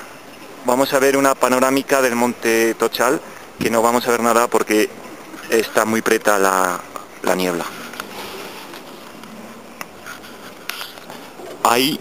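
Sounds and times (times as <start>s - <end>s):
camera handling rustle and scrape: 7.7s - 11.6s.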